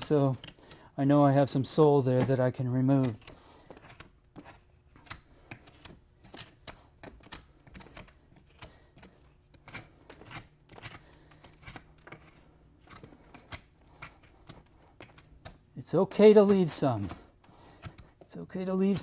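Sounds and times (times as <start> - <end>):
hoof knife scraping hoof: 0.0 - 19.0.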